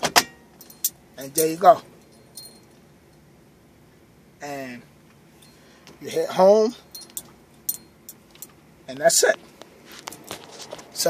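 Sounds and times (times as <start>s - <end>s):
faint metallic clink: 2.0s - 3.2s, 6.9s - 8.6s.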